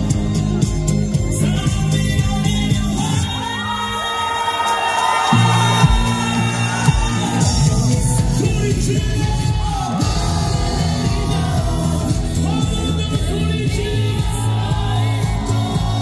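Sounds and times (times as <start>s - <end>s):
man singing: 0.0s - 5.0s, 5.6s - 16.0s
pop band playing: 0.0s - 16.0s
crowd cheering: 2.5s - 16.0s.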